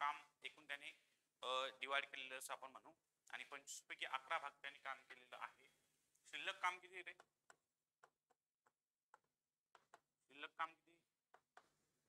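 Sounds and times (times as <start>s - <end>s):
pen tip tapping writing board: 7.5s - 10.1s.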